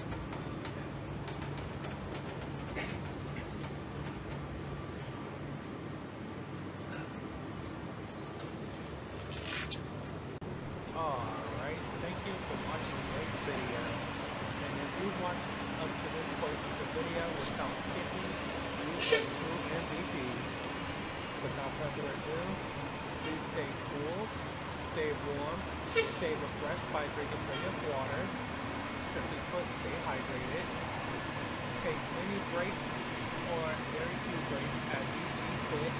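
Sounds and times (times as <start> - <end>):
bus engine running: 0.0 - 35.9
people's voices: 10.9 - 20.5, 21.4 - 24.3, 25.0 - 28.4, 31.8 - 35.9
air brakes hissing: 13.6 - 14.1, 18.9 - 19.6, 25.8 - 26.4.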